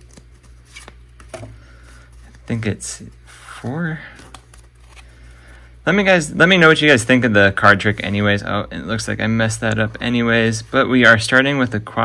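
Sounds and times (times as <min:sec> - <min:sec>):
trading cards sliding: 0:00.0 - 0:02.5, 0:04.1 - 0:05.6.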